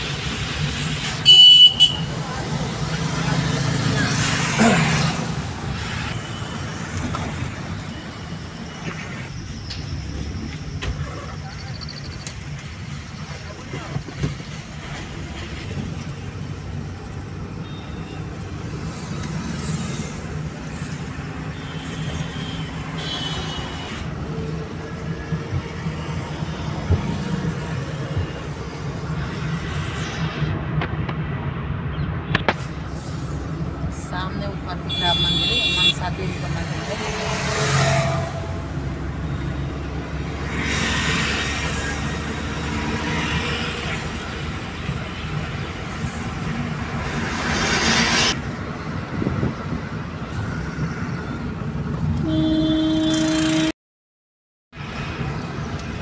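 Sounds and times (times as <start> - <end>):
car road and engine rumble: 0.0 - 53.8, 54.8 - 56.0
vehicles passing: 0.0 - 53.8, 54.8 - 56.0
vehicle horns honking: 1.2 - 2.2, 21.6 - 24.0, 34.9 - 36.4, 37.0 - 38.7, 52.2 - 53.8.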